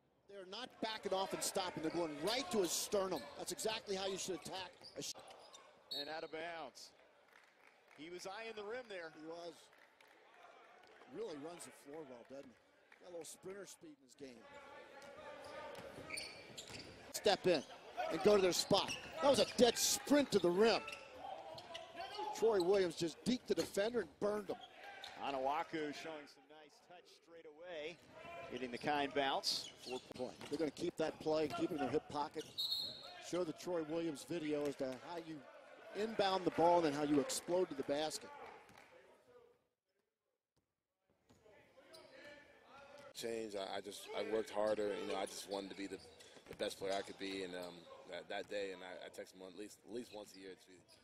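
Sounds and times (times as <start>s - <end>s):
sneaker squeaks: 1.7s - 6.4s, 14.5s - 23.7s, 27.9s - 33.3s, 41.8s - 42.3s, 45.0s - 48.1s.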